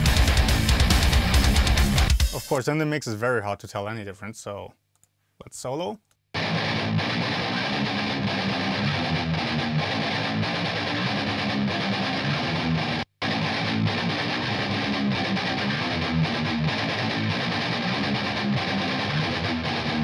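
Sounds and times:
electric guitar playing: 0:00.0 - 0:02.3, 0:06.4 - 0:20.0.

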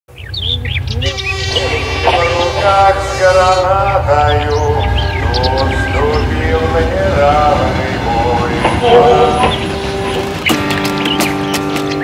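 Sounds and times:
birds chirping: 0:00.1 - 0:12.0
low rumble: 0:02.6 - 0:10.5.

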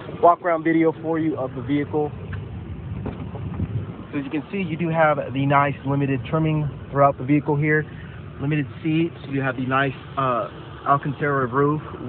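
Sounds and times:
wind rumbling on microphone: 0:00.0 - 0:10.2.

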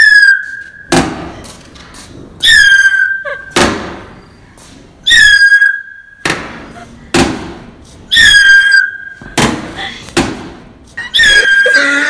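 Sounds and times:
shrill descending whistle: 0:00.0 - 0:00.9, 0:02.4 - 0:03.4, 0:05.0 - 0:06.2, 0:08.1 - 0:09.2, 0:11.0 - 0:12.0.

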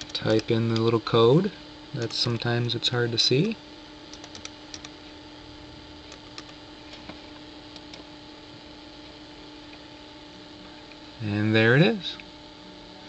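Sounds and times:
computer keyboard keystrokes: 0:00.0 - 0:00.9, 0:03.4 - 0:05.0
steady electrical hum: 0:00.0 - 0:13.0.

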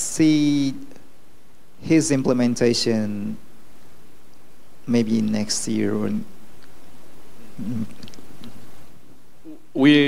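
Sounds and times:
room and pa hiss: 0:00.0 - 0:10.0.

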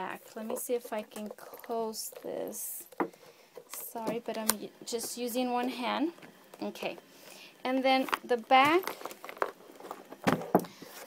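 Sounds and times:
box knock and rustle: 0:08.0 - 0:11.0.

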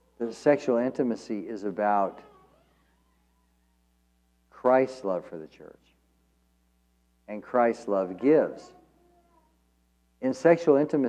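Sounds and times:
faint steady hum: 0:00.0 - 0:11.0
man speaking: 0:00.2 - 0:02.2, 0:04.6 - 0:05.9, 0:07.3 - 0:08.8, 0:10.2 - 0:11.0.

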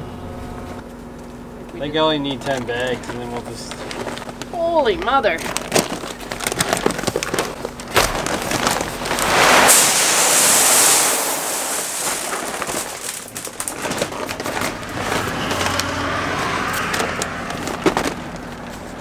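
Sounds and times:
paper bag rustling and knocking: 0:05.3 - 0:15.8, 0:17.4 - 0:19.0
seed pouring into tank: 0:08.3 - 0:13.8.

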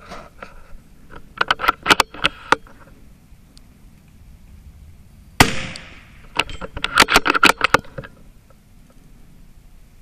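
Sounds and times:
rifle shot: 0:05.4 - 0:06.4.

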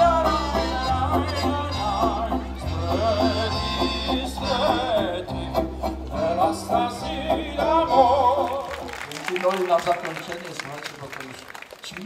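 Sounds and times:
accordion: 0:00.0 - 0:08.9
acoustic guitar: 0:00.0 - 0:09.0
bass guitar: 0:00.0 - 0:09.0.

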